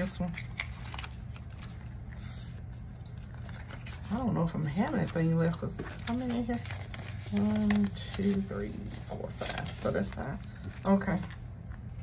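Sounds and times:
paper bills rustling: 0.0 - 11.5.

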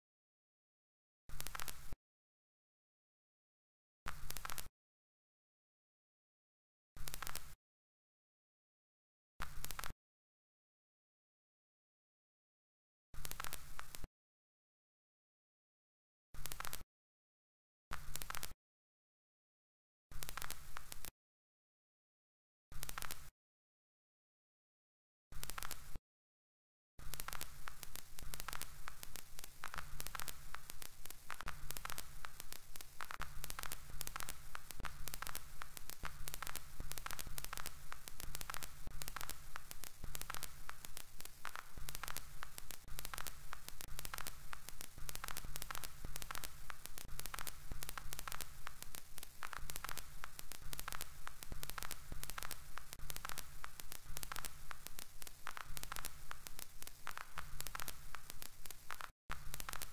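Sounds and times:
crackling static: 1.3 - 2.0, 4.1 - 4.7, 7.0 - 7.6, 9.4 - 10.0, 13.2 - 14.1, 16.4 - 16.9, 17.9 - 18.6, 20.1 - 21.1, 22.7 - 23.3, 25.3 - 26.0, 27.0 - 59.9.

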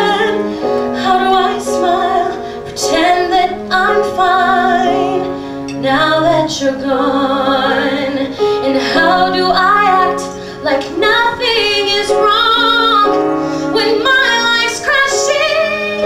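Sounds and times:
piano: 0.0 - 16.0
woman singing a slow ballad: 0.0 - 16.0.

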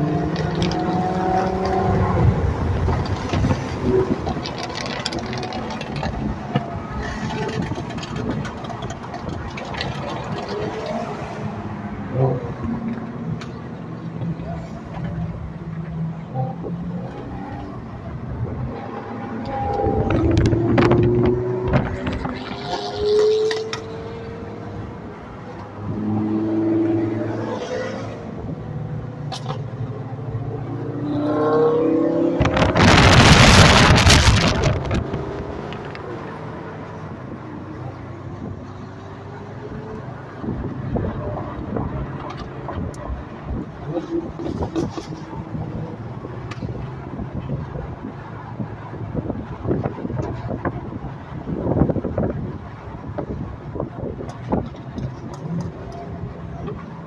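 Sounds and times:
engine and exhaust rush: 0.0 - 57.0
sports car engines revving: 0.0 - 57.0.

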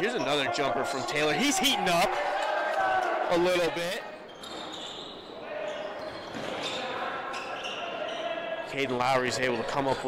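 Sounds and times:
voices echoing in hall: 0.0 - 10.0.

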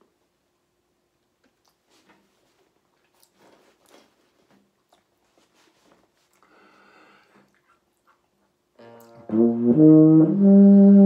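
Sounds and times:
small handling noises: 1.2 - 6.5
faint soft breaths: 5.3 - 8.2.

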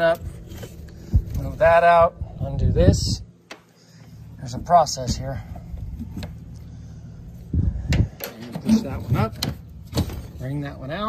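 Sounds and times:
wind rumbling on microphone: 0.1 - 3.4, 4.3 - 10.1.

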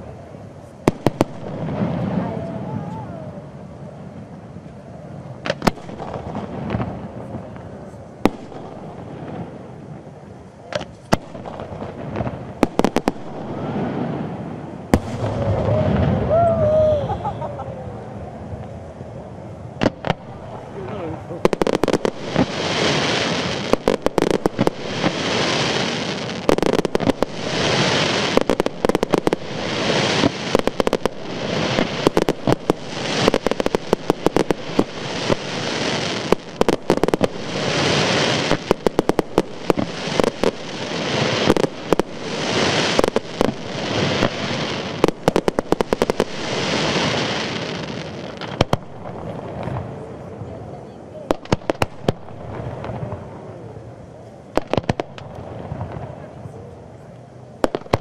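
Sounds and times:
fireworks bangs and crackles: 0.0 - 17.4, 18.2 - 58.0.

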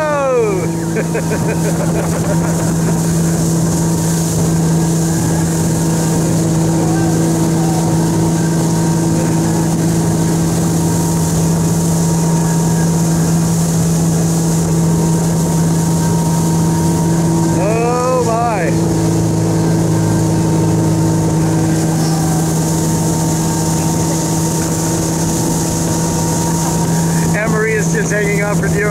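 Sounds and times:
motorboat engine drone: 0.0 - 28.9
wake rushing and spray: 0.0 - 28.9.

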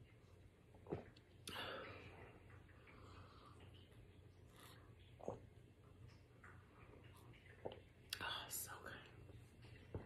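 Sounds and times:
woman whispering: 8.2 - 9.2.

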